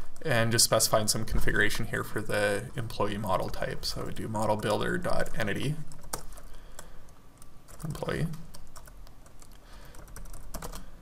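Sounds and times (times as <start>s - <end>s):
keyboard typing clicks: 5.9s - 10.9s.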